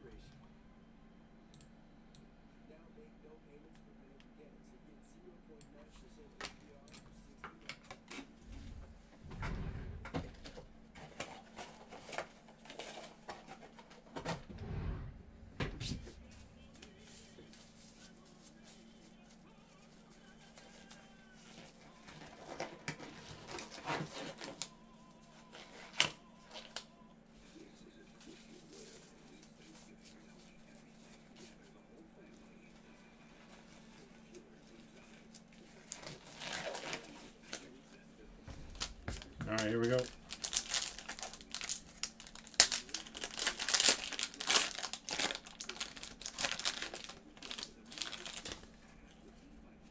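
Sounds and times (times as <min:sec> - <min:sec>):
steady low hum: 0:00.0 - 0:11.9, 0:14.1 - 0:20.1.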